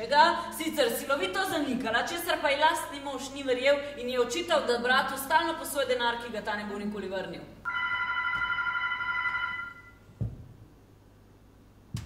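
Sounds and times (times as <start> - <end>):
telephone ringing: 7.7 - 10.0.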